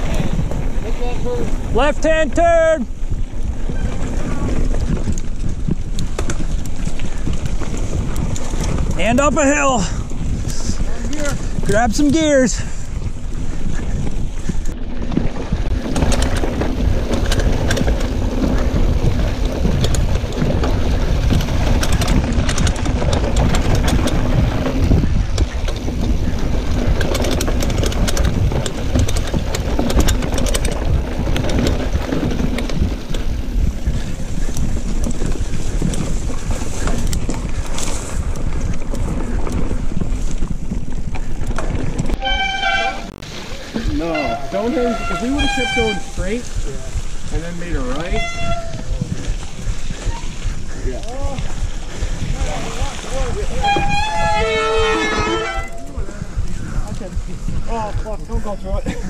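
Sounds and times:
bike rattling over bumps: 0.0s - 59.0s
bike tyre rumble: 0.0s - 59.0s
wind rushing over microphone: 0.0s - 59.0s
pitched tones: 42.2s - 43.2s.

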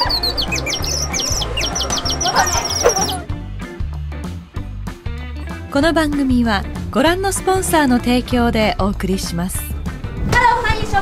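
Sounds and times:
high-pitched bird-like chirps: 0.0s - 3.2s
music with bass beat: 0.0s - 5.6s.

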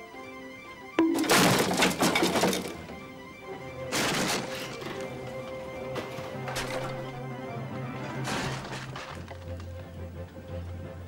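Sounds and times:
music: 0.0s - 11.0s
wooden beams and rock caving in: 1.1s - 3.2s, 3.8s - 7.2s, 7.9s - 9.9s.

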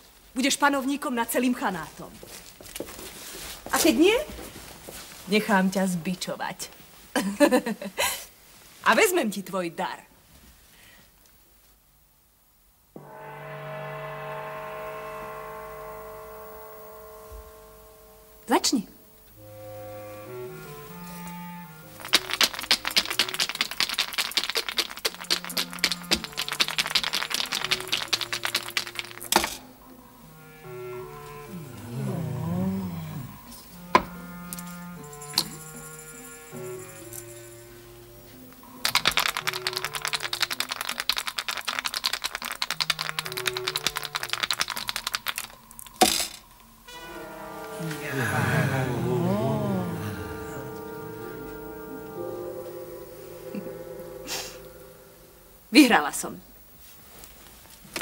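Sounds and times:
dice rattling in a cup: 22.0s - 29.6s, 38.8s - 46.4s
melodic background music: 46.7s - 55.8s.

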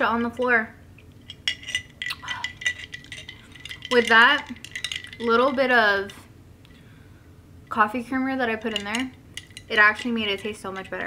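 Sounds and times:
metal straw and ice clinking in glass: 1.2s - 6.2s, 8.5s - 11.0s.

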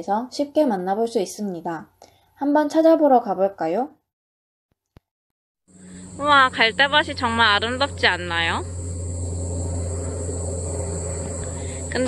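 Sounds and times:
insects chirring: 5.7s - 12.0s
low rumble: 5.7s - 12.0s.

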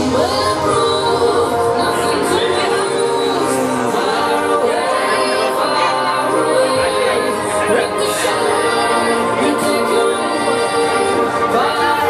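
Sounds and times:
choir-like singing with music: 0.0s - 12.0s.

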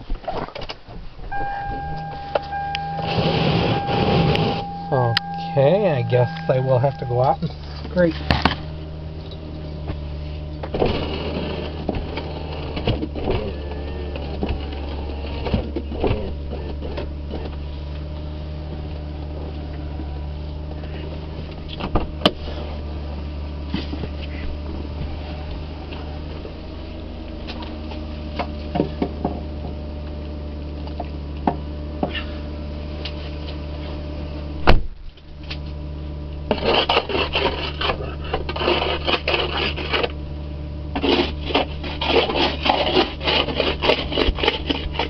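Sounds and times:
car engine idling: 0.0s - 45.0s
ice scraped off windows: 10.8s - 15.4s, 36.5s - 40.2s, 40.9s - 45.0s.

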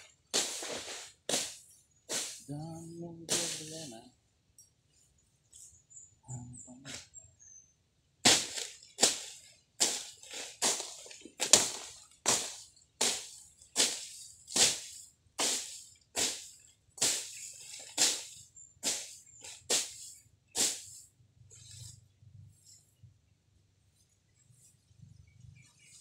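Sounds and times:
machete slashing through grass: 0.4s - 2.4s, 3.3s - 3.7s, 8.3s - 20.9s.

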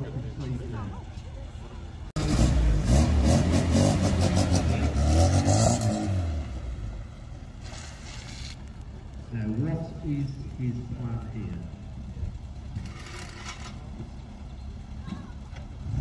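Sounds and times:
car engine revving past: 2.2s - 8.2s.

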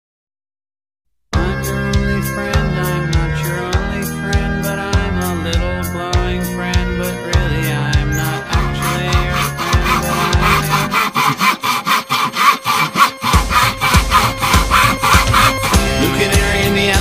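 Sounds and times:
handsaw cutting wood: 8.2s - 16.2s
pop song with band: 15.8s - 17.0s.

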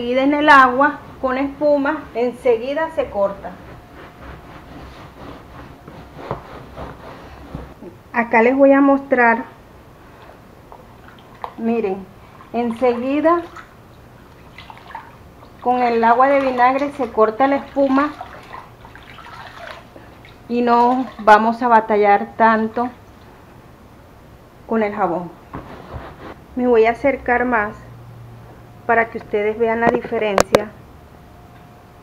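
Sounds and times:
cloth rubbing on cushion: 0.4s - 7.9s, 25.4s - 26.4s
water sloshing in a basin: 10.7s - 21.9s.

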